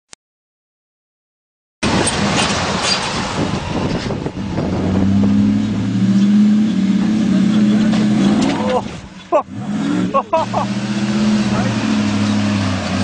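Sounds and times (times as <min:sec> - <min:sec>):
pickup engine drone: 0:01.8 - 0:13.0.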